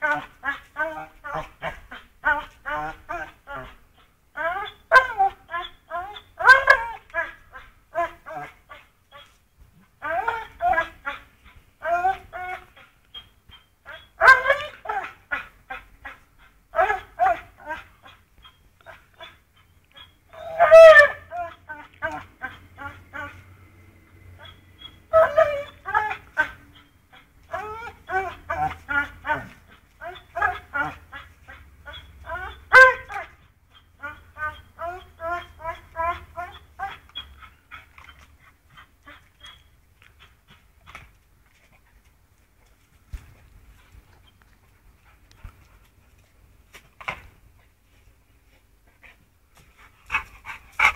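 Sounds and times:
dog whining and grunting: 0:00.0 - 0:23.6, 0:24.3 - 0:41.1.

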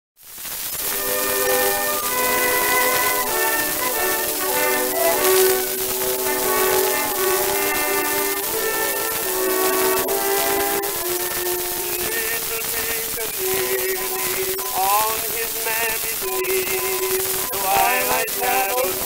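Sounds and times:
record surface hiss: 0:00.2 - 0:19.0
orchestra playing a melody: 0:00.9 - 0:12.1.

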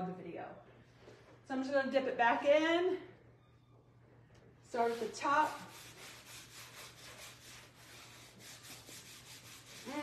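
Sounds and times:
sponge rubbing leather: 0:04.8 - 0:10.0.

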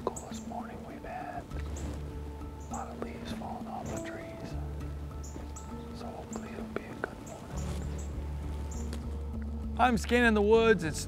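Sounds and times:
man whispering: 0:00.0 - 0:01.5, 0:02.7 - 0:04.6, 0:06.0 - 0:07.6
music with long low notes: 0:00.0 - 0:11.0.

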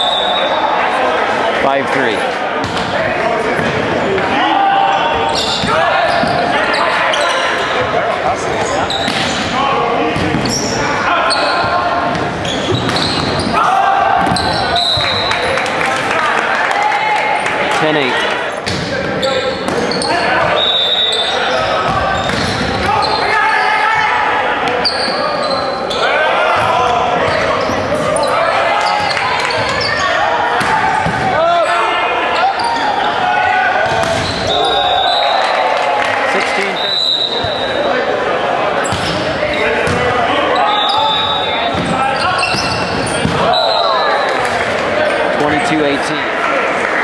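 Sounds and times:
people shouting in a hall: 0:00.0 - 0:47.0
volleyball hits: 0:02.6 - 0:03.8, 0:08.6 - 0:10.6, 0:12.1 - 0:15.3, 0:18.6 - 0:20.6, 0:21.8 - 0:23.2, 0:28.8 - 0:31.6, 0:33.8 - 0:34.8, 0:38.9 - 0:40.2, 0:41.7 - 0:44.9
sneaker squeaks on hardwood: 0:05.2 - 0:07.6, 0:08.6 - 0:09.6, 0:10.2 - 0:13.6, 0:14.2 - 0:15.3, 0:40.6 - 0:43.9.

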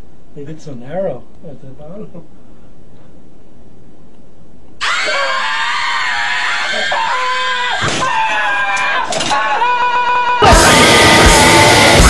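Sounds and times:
person screaming in fright: 0:04.8 - 0:12.0.

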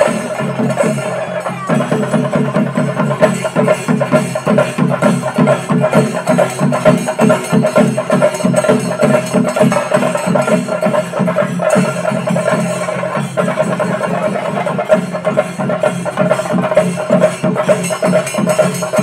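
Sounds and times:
fast drumming: 0:00.0 - 0:19.0.

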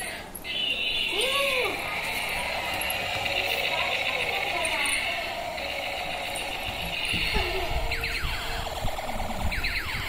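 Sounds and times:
toy electronic sound effects: 0:00.0 - 0:10.0
toy motor whirring: 0:00.0 - 0:10.0
toy wheels rattling on floor: 0:00.0 - 0:10.0.

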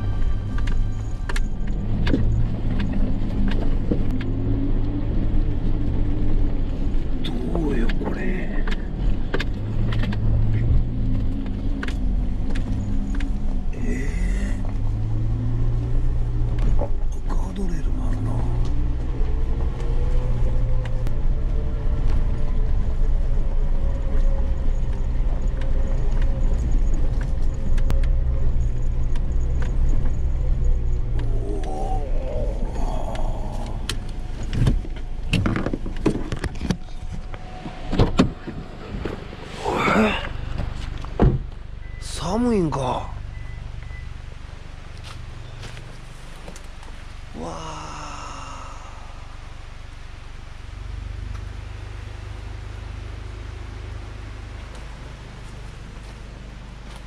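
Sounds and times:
stones clicking under tyres: 0:00.0 - 0:14.9, 0:18.6 - 0:37.4, 0:44.8 - 0:47.1
car engine running: 0:00.0 - 0:57.0.

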